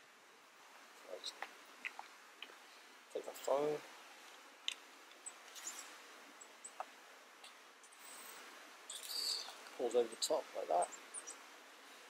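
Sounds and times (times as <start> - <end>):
faint clicks: 1.3 - 2.6, 4.3 - 5.9.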